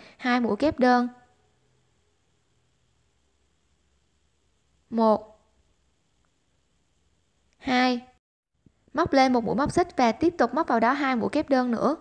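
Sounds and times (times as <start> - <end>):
woman's voice: 0.0 - 1.2, 4.9 - 5.4, 7.6 - 8.2, 8.9 - 12.0.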